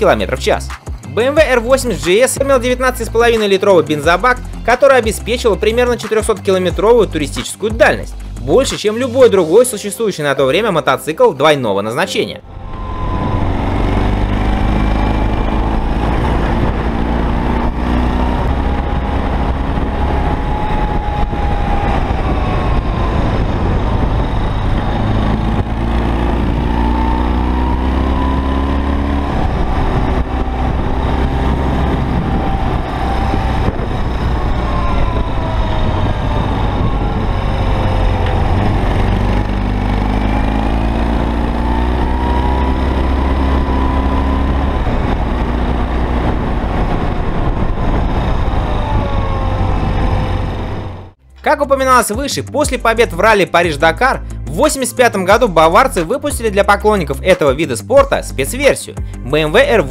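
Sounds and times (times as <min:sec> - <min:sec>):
motorcycle engine revving: 0:12.4 - 0:51.2.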